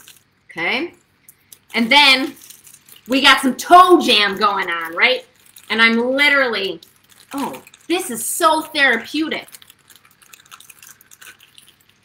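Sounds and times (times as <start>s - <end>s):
fruit squishing: 0.0s - 12.0s
plastic bag crinkling: 0.0s - 12.0s.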